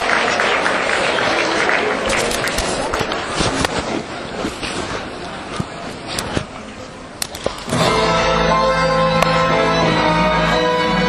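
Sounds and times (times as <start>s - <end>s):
audience applause: 0.0s - 3.4s.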